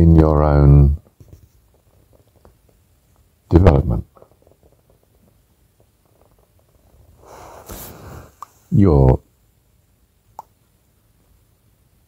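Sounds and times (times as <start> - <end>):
faint click: 10.3 - 10.6.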